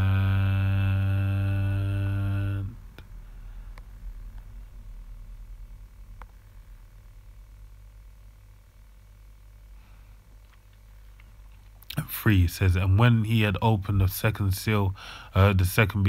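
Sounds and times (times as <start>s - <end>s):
man humming drawn-out word: 0.0s - 3.0s
faint room hum: 0.0s - 16.0s.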